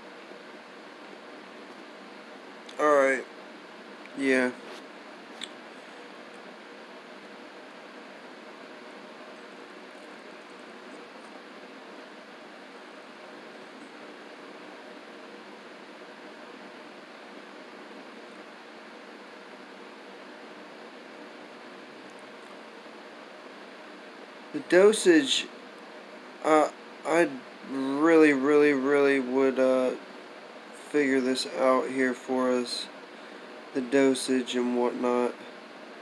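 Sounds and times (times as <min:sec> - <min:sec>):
faint steady hum: 0:00.0 - 0:36.0
room tone hiss: 0:00.0 - 0:36.0.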